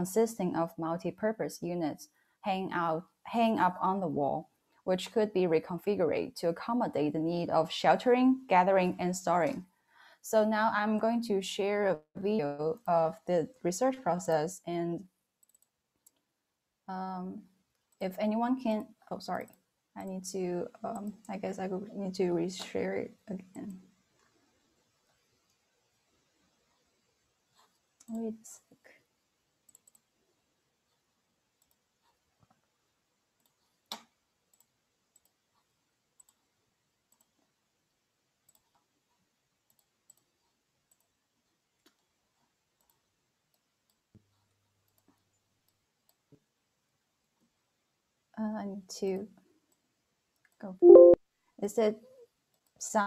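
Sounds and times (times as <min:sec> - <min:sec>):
faint computer mouse clicks: 0:15.4 - 0:16.3, 0:33.4 - 0:36.4.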